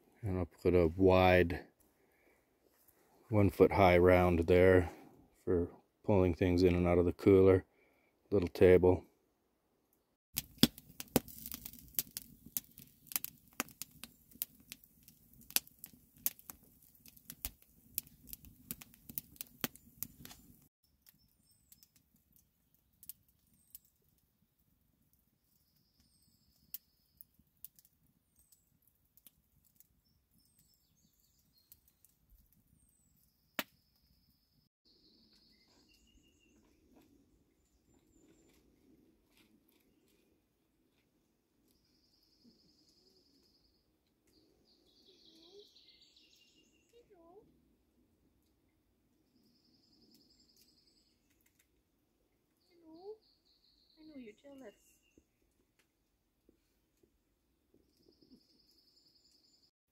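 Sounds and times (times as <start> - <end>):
wood campfire crackling: 10.3 - 33.7, 36.7 - 41.8, 43.4 - 54.7
sharp snaps of fire: 10.4 - 20.7, 21.7 - 24.0.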